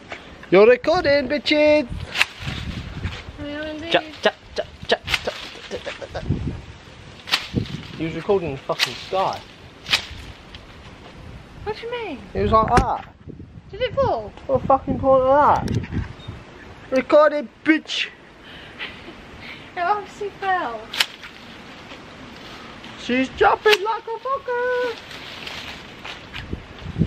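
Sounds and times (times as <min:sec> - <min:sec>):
hedge shears snipping: 0:02.0 - 0:06.2, 0:07.1 - 0:10.7, 0:20.9 - 0:22.5, 0:23.5 - 0:26.5.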